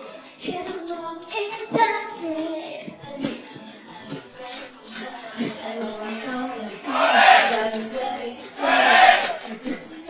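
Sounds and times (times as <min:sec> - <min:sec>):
women singing: 0:00.1 - 0:10.0.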